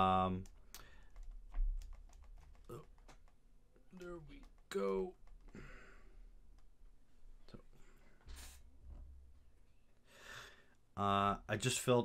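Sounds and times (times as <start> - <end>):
resin parts clicking and tapping: 0.4 - 5.8.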